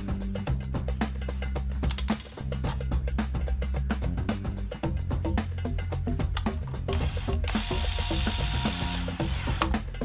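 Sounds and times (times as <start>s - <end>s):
background music with steady beat: 0.0s - 10.0s
cordless drill driving screw: 6.9s - 9.7s.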